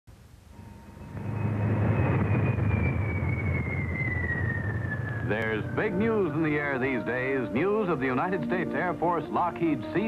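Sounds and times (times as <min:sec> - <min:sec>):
high whine falling in pitch: 0:00.1 - 0:08.1
turboprop engines rumbling: 0:00.4 - 0:10.0.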